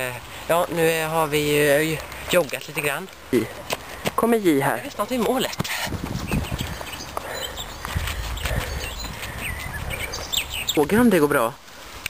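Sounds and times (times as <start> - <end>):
jogging footsteps on gravel: 0.5 - 11.2.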